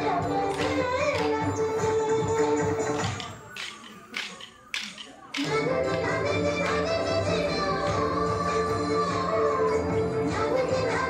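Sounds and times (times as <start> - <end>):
dance music: 0.0 - 11.0
sticks clacking together: 3.0 - 5.6.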